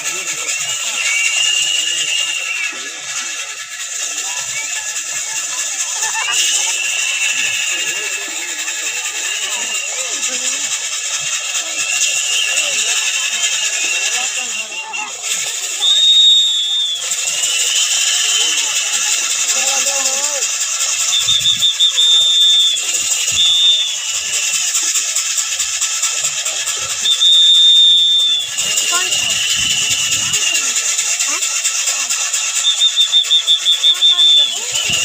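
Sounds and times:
murmur of crowd: 0:00.0 - 0:35.0
wooden mill squealing: 0:00.0 - 0:35.0.

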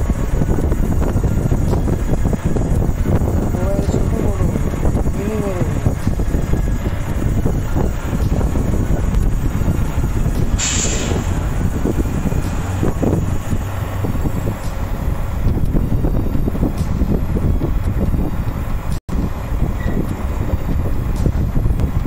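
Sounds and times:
truck diesel engine rumbling: 0:00.0 - 0:22.0
wind buffeting microphone: 0:00.0 - 0:22.0
air release hiss: 0:10.5 - 0:11.7.

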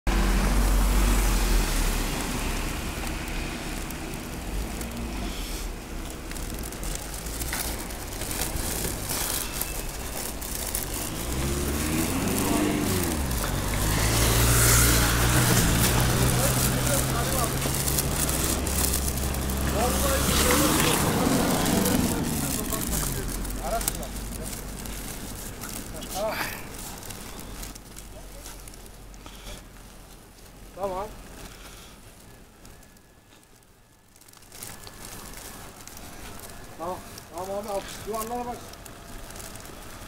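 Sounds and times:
street traffic on snow: 0:00.0 - 0:40.0
vehicle engine humming: 0:00.1 - 0:40.0.

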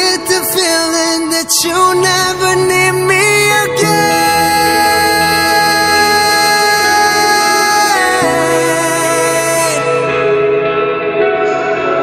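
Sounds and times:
man singing long note: 0:00.0 - 0:10.6
pop ballad accompaniment: 0:00.0 - 0:12.0.

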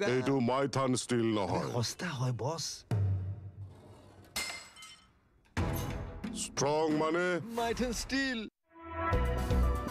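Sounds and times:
glassy clink: 0:04.4 - 0:05.2
music: 0:05.6 - 0:08.0, 0:08.6 - 0:09.9.

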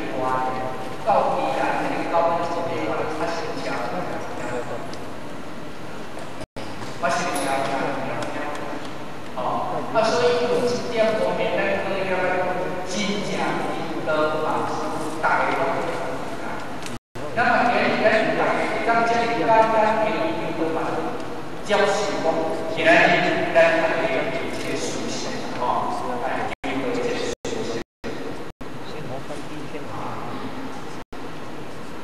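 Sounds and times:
person lecturing: 0:00.0 - 0:05.0, 0:07.0 - 0:31.0.

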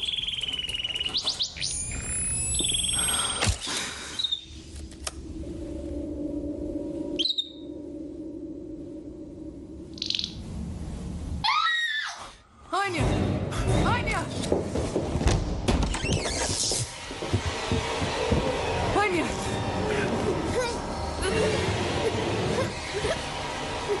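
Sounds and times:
low eerie film score drone: 0:00.0 - 0:13.8, 0:15.8 - 0:24.0
canary trilling and chirping: 0:10.0 - 0:10.4.

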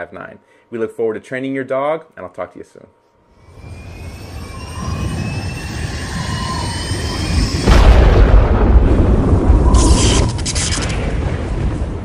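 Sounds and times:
rising whistle-like tones: 0:03.3 - 0:08.3
whooshing riser: 0:03.4 - 0:08.2
deep impact: 0:06.1 - 0:12.0.

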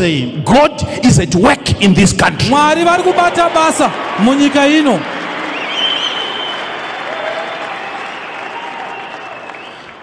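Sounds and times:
crowd applauding in a hall: 0:02.8 - 0:10.0.

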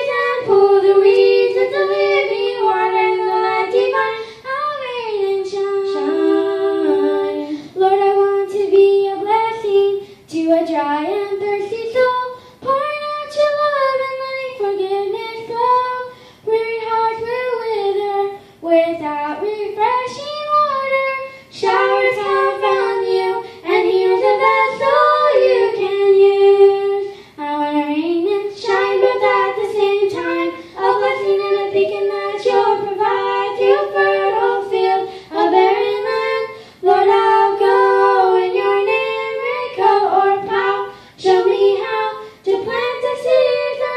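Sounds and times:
girls singing gospel song: 0:00.0 - 0:43.9.

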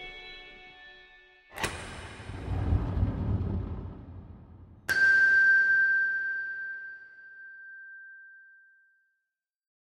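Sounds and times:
bell-like chime: 0:04.9 - 0:09.3.

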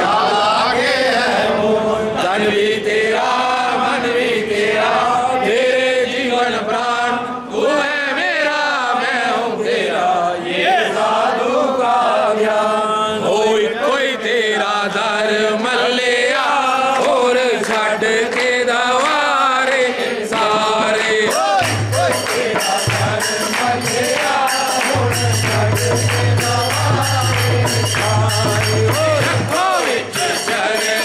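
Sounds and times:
congregation chanting devotional song: 0:00.0 - 0:31.0.

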